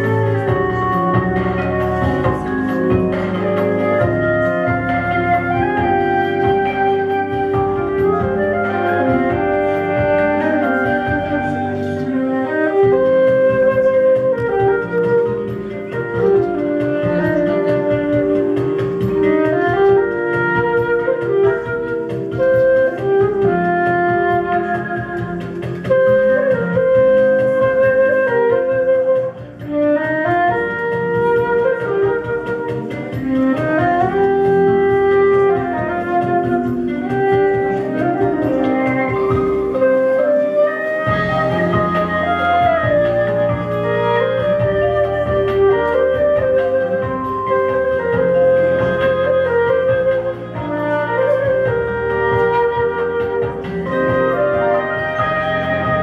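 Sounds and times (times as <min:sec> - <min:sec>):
flute melody: 0:00.0 - 0:56.0
steady beat: 0:00.0 - 0:56.0
sustained keyboard chords: 0:00.0 - 0:56.0.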